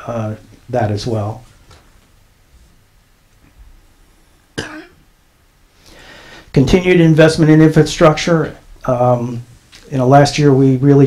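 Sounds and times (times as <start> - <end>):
person coughing: 4.6 - 5.0.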